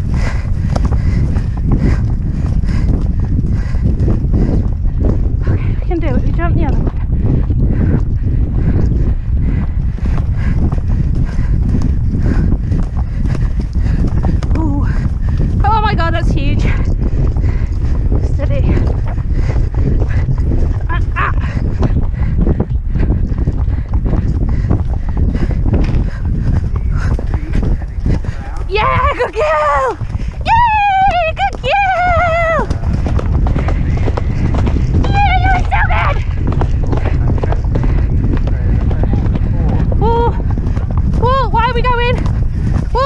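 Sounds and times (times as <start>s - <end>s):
wind rumble on microphone: 0.0s - 43.0s
horse hoofbeats on turf: 8.8s - 43.0s.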